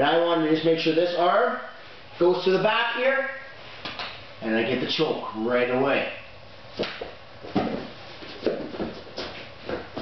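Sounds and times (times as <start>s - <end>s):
bodies shuffling on foam mats: 6.8s - 10.0s
soft thuds: 6.8s - 10.0s.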